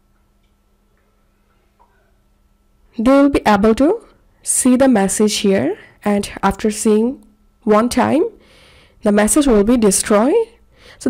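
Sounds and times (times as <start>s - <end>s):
faint background hum: 0.0s - 11.0s.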